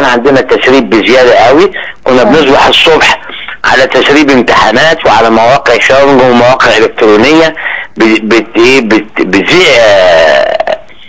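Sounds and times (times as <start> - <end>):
man's voice over telephone: 0.0 - 10.9.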